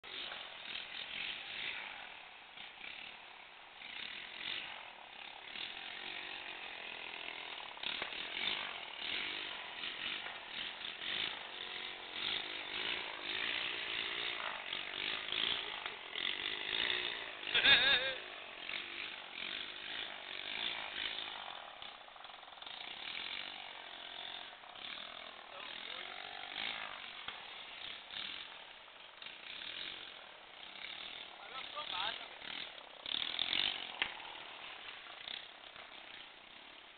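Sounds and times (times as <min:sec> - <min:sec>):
motorized bicycle engine running: 0:00.1 - 0:36.9.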